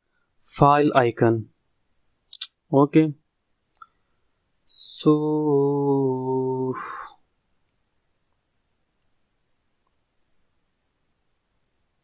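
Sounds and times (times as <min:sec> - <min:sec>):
man saying so: 0:04.7 - 0:07.2.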